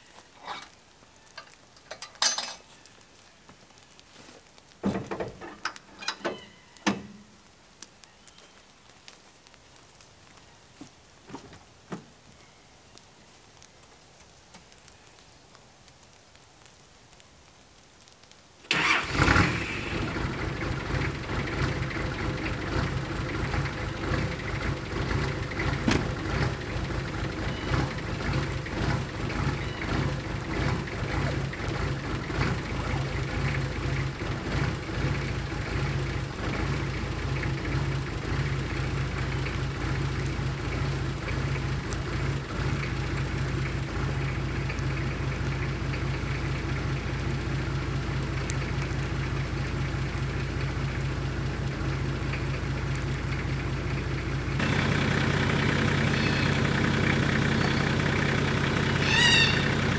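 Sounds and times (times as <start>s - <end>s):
engine starting and idling: 18.7s - 47.5s, 51.7s - 59.9s.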